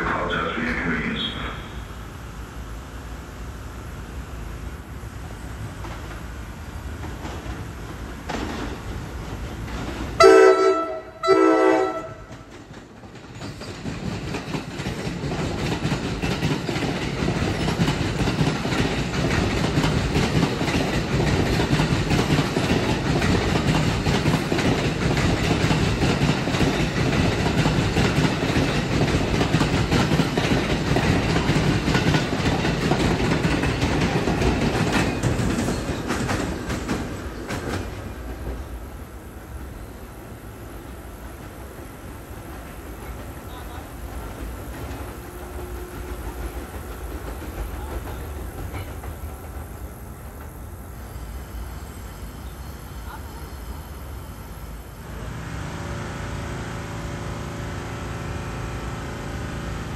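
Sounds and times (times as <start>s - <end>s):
train wheels rumbling on rail: 0.0s - 59.9s
train horn blasts: 10.2s - 12.4s, 45.2s - 46.5s.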